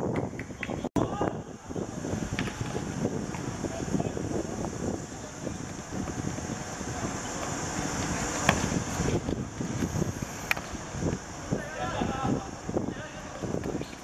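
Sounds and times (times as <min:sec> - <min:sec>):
wind buffeting microphone: 0:00.0 - 0:14.0
steady high hiss: 0:00.3 - 0:14.0.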